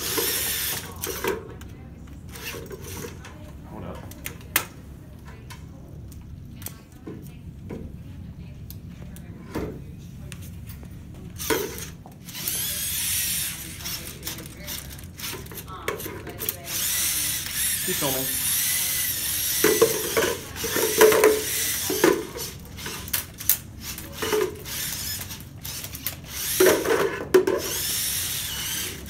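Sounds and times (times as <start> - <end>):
robot motors whirring: 0.0 - 1.2, 11.4 - 15.7, 16.4 - 26.8, 27.6 - 29.0.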